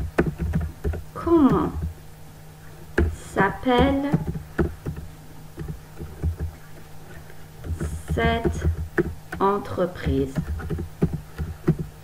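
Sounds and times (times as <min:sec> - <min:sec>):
low electrical hum: 0:00.0 - 0:12.0
computer keyboard keystrokes: 0:00.1 - 0:01.9, 0:03.8 - 0:06.6, 0:07.6 - 0:12.0.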